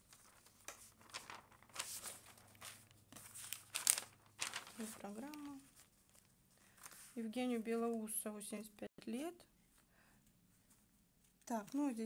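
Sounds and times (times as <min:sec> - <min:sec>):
newspaper page rustling: 0:00.0 - 0:07.4.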